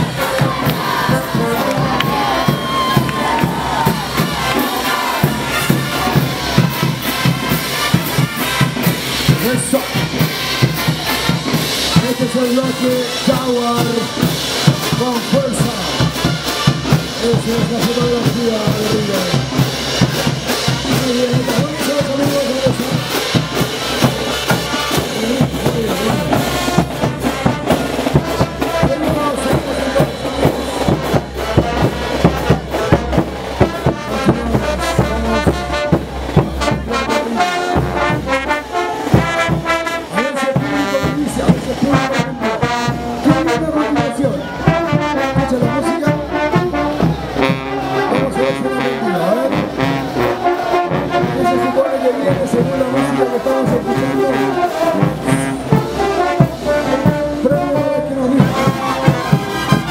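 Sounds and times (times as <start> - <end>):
bass drums: 0.0 - 59.9
trumpets and trombones: 0.0 - 59.9.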